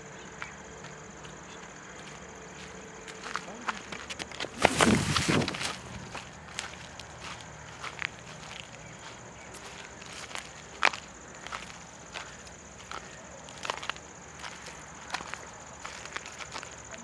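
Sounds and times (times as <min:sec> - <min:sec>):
footsteps crunching on dry stubble: 0:00.4 - 0:17.0.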